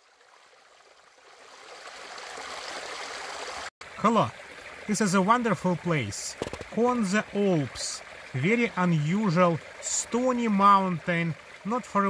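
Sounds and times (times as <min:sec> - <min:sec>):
stream running over rocks: 0:00.0 - 0:12.0.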